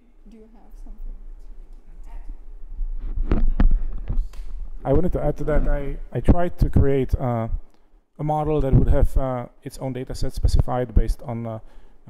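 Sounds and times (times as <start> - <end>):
mains hum: 0.0 - 12.0
microphone handling thumps: 2.6 - 7.7.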